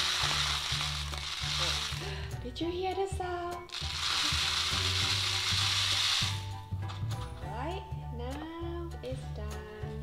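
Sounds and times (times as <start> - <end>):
seeds rattling in rain-stick: 0.0 - 2.1, 3.7 - 6.6
background music with bass: 0.0 - 10.0.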